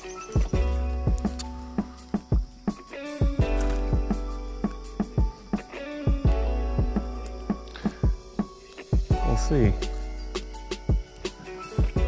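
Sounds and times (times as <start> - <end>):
background music with beat: 0.0 - 12.0.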